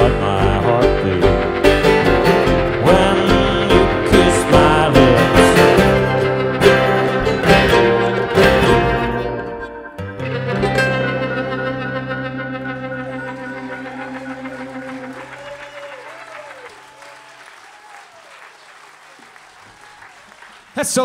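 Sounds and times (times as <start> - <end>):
strummed chord of string band: 0.0 - 15.3
audience applause: 13.0 - 21.0.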